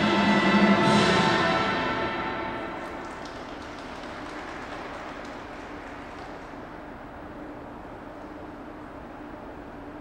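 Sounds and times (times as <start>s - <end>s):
ice rink background noise: 0.0s - 10.0s
scattered applause: 2.8s - 6.8s.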